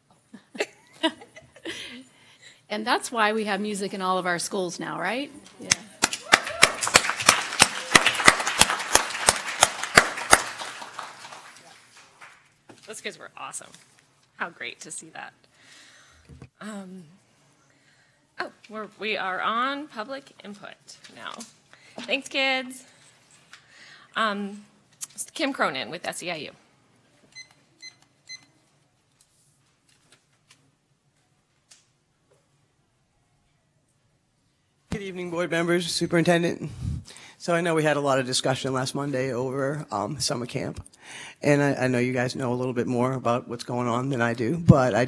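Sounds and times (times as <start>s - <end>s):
nearby hands clapping loudly: 5.7s - 12.5s
room of people clapping: 5.7s - 12.7s.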